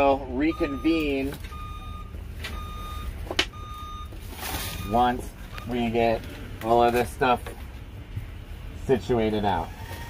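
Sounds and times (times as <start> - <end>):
low engine rumble: 0.0 - 10.0
reversing alarm beeping: 0.4 - 6.0.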